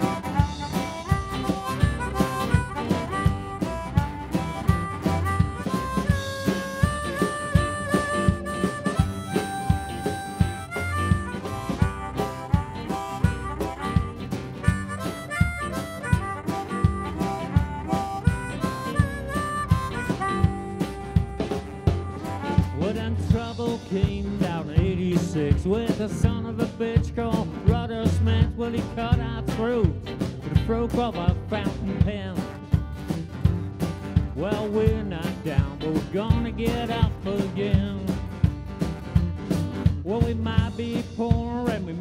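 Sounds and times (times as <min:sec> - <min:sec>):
harmonica solo: 0:00.0 - 0:23.1
blues-rock band playing: 0:00.0 - 0:42.0
drums: 0:00.0 - 0:42.0.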